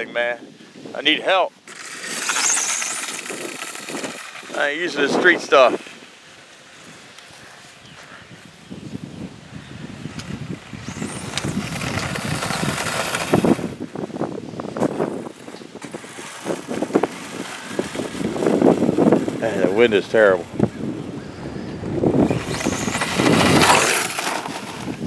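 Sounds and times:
wind buffeting microphone: 0.0 - 25.0
electric motor and gears whining: 1.6 - 7.4, 9.9 - 25.0.

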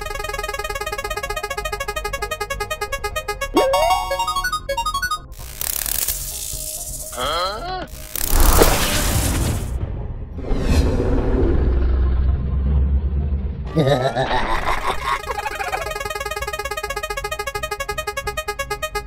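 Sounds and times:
cartoon music: 0.0 - 6.4, 15.1 - 19.0
ticking musical run: 0.0 - 7.1, 14.9 - 19.0
crackling electric surge: 5.3 - 7.3, 7.9 - 9.8
deep rumble: 8.4 - 14.5.

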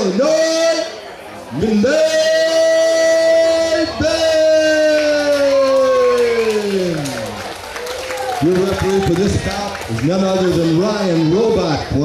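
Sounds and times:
announcer's drawn-out amplified call: 0.0 - 7.4.

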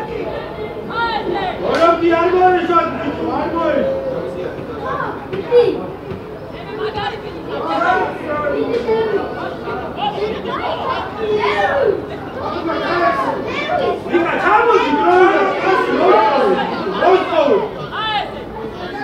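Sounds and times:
voices talking and calling out: 0.0 - 19.0.

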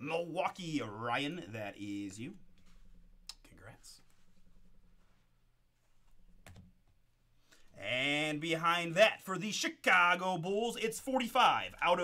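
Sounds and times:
faint low hum: 0.0 - 9.0.

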